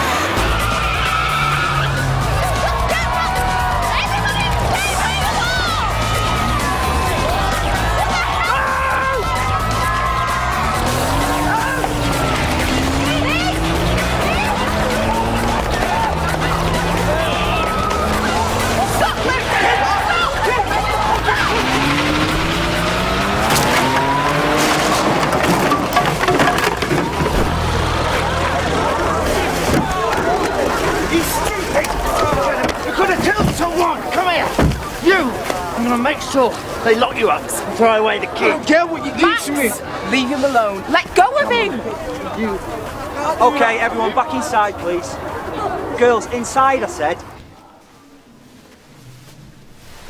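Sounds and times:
background music: 0.0 - 25.4
car engine running: 0.0 - 35.0
car tyres squealing: 0.0 - 36.8.

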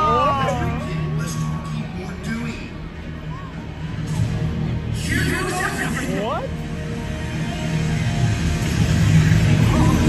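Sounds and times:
dramatic soundtrack music: 0.0 - 10.0.

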